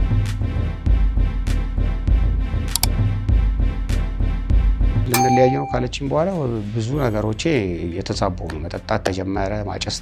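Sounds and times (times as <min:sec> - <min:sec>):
metallic ding: 0:05.2 - 0:06.0.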